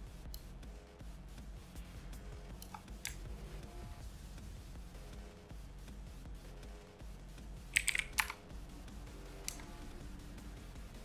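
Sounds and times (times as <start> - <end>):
quiet background music: 0.0 - 11.0
keyboard keystrokes: 7.8 - 8.4.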